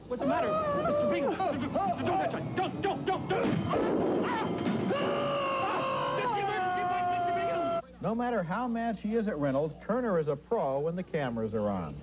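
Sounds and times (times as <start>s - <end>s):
man screaming in panic: 0.2s - 1.5s, 4.4s - 7.8s.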